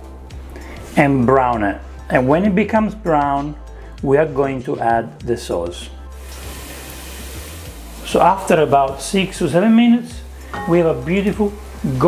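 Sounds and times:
background music with bass line: 0:00.0 - 0:12.0
onion sizzling in oil: 0:06.1 - 0:12.0.

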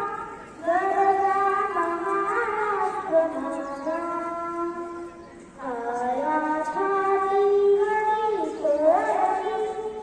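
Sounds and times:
girl singing into a microphone: 0:00.0 - 0:10.0.

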